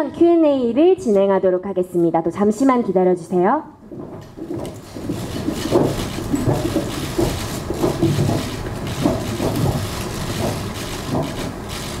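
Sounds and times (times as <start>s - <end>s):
people moving about: 3.9s - 12.0s.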